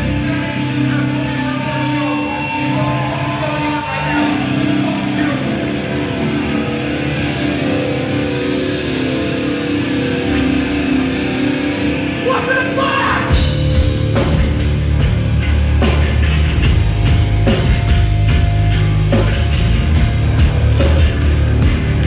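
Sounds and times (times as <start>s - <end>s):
distorted electric guitars: 0.0s - 22.0s
drumbeat: 13.3s - 22.0s.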